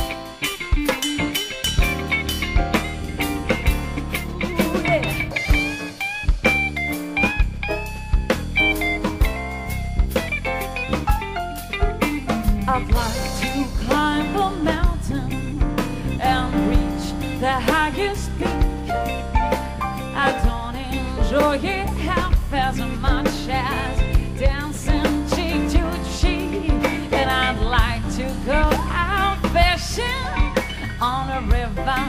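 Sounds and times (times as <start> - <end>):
jazz band playing: 0.0 - 32.0.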